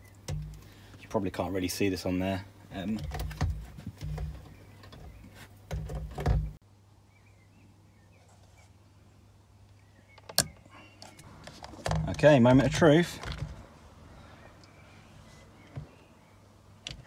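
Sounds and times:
airbag module knocks and clicks: 2.9 - 6.6.

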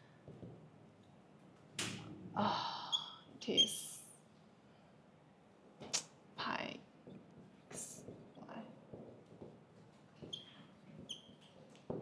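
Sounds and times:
marker squeaking on whiteboard: 2.9 - 3.9, 7.1 - 11.9.

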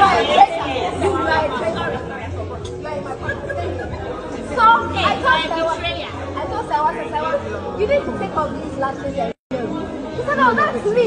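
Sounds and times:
chatter of people: 0.0 - 11.0.

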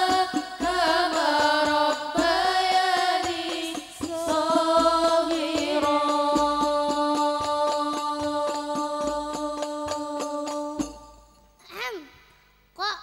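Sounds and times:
music with a quick beat: 0.0 - 11.5.

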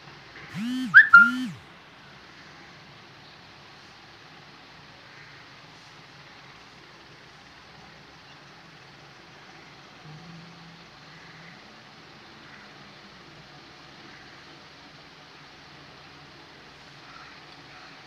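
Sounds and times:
microphone hiss: 0.0 - 2.2.

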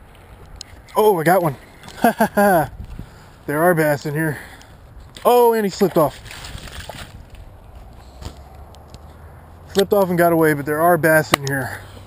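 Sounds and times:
wind rumble on camera: 2.5 - 3.2, 6.1 - 9.7
footsteps through dry grass: 5.9 - 9.7
camera handling noise: 7.3 - 9.2.

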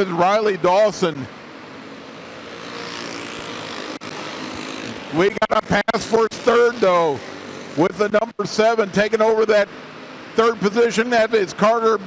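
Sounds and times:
kart engines buzzing: 0.1 - 11.6.

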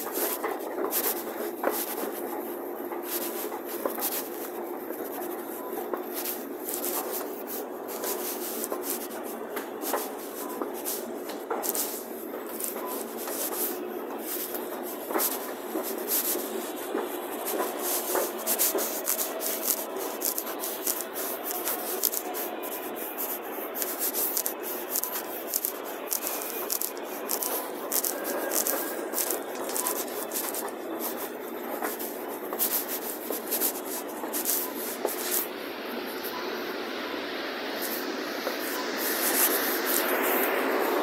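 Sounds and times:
rubbing on phone microphone: 0.0 - 41.0.

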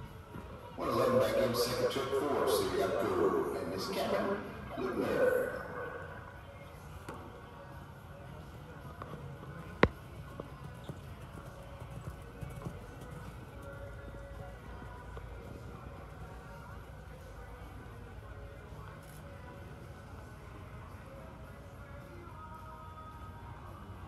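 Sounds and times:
low outdoor background: 0.0 - 24.0
horse hoofbeats on dirt: 8.3 - 16.6.

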